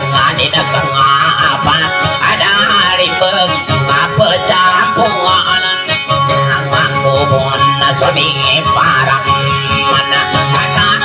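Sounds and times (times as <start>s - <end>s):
plucked string instrument melody: 0.0s - 11.0s.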